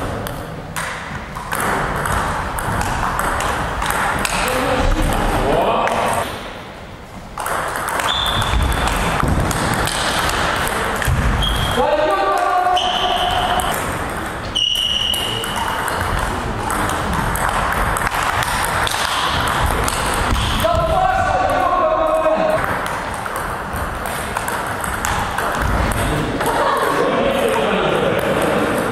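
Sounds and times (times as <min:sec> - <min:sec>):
table tennis balls clicking: 0:00.1 - 0:06.5, 0:07.2 - 0:20.7, 0:22.5 - 0:28.9
voices in a hall: 0:03.7 - 0:07.4, 0:08.3 - 0:23.3, 0:25.1 - 0:28.9.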